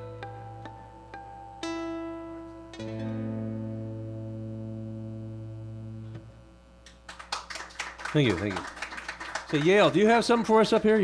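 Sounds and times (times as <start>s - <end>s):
guitar and synthesizer chord: 0.0s - 6.8s
audience applause: 7.1s - 10.2s.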